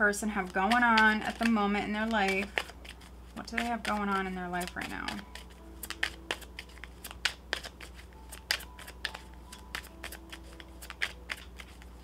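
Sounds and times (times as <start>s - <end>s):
cards being shuffled: 0.2s - 12.0s.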